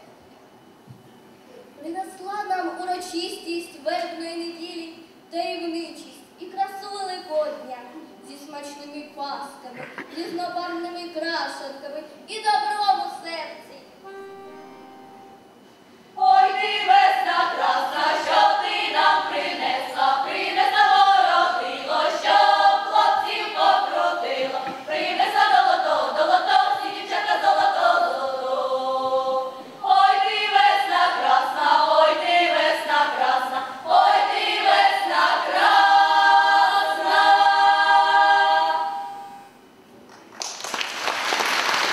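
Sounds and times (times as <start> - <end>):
girls' choir singing unaccompanied: 16.2 - 39.4
applause: 40.1 - 41.9.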